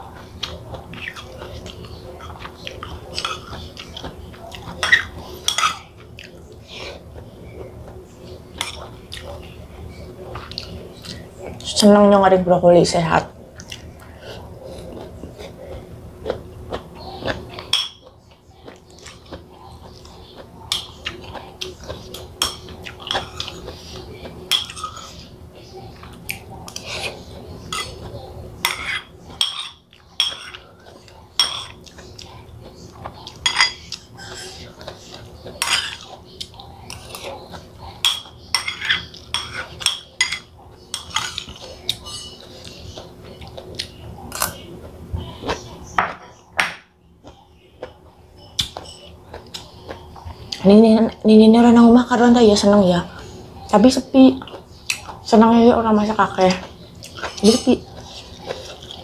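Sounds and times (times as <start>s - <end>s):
faint steady hum: 0.0s - 59.0s
spoon clinking against ceramic bowl: 33.4s - 33.8s.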